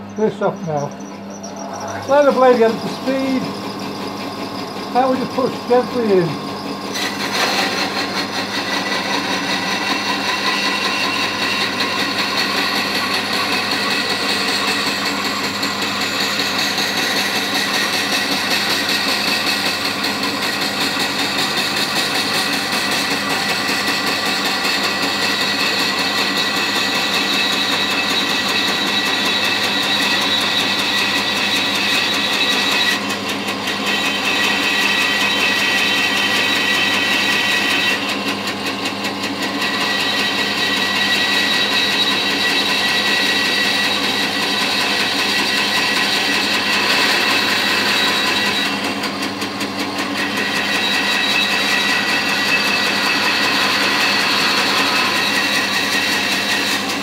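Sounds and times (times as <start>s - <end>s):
bandsaw running with whine: 0.0s - 57.0s.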